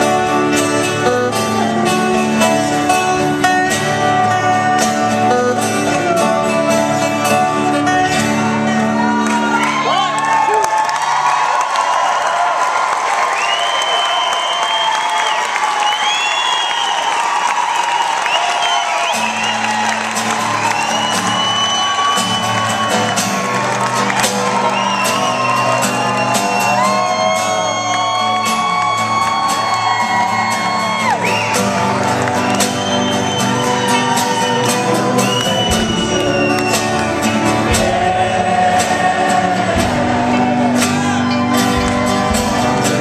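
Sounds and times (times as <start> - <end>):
live band with acoustic guitars: 0.0 - 43.0
audience whooping and shouting: 8.7 - 43.0.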